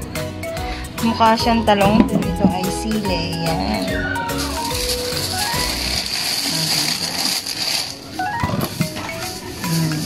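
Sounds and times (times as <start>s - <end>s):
background music with stepped notes: 0.0s - 7.0s, 7.6s - 10.0s
plastic bag crinkling: 3.8s - 10.0s.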